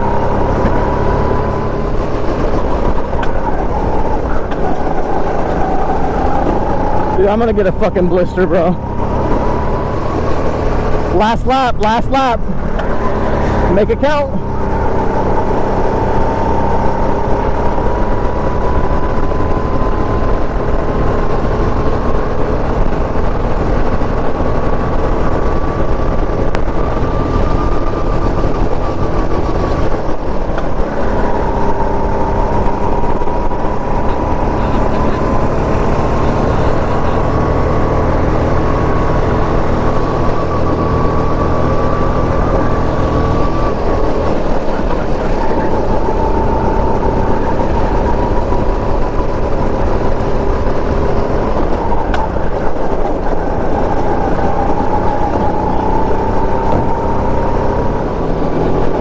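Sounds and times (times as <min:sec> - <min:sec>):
go-kart motor running: 0:00.0 - 0:59.0.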